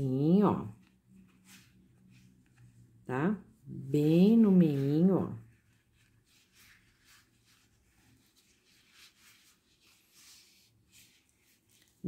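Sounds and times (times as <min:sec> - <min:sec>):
soft rustling of yarn: 0:00.0 - 0:12.0.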